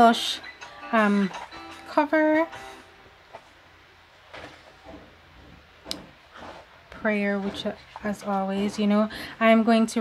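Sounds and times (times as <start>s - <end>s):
pages rustling: 4.2s - 9.0s.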